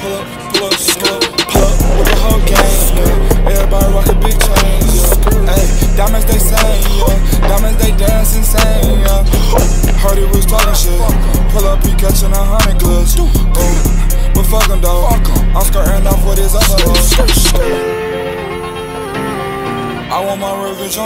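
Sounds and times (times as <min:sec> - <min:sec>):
hip hop backing track: 0:00.0 - 0:21.0.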